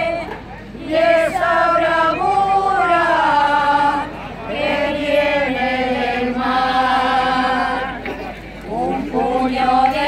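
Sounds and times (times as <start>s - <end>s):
folk choir singing: 0.0s - 10.0s.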